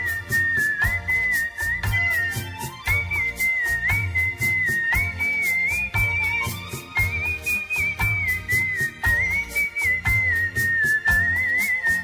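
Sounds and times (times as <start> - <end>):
instrumental backing track: 0.0 - 12.0
person whistling a melody: 0.0 - 12.0.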